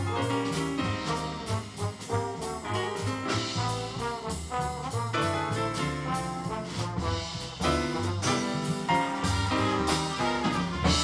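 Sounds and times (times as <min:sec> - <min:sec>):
jazz big band playing swing: 0:00.0 - 0:11.0
trombones: 0:00.0 - 0:11.0.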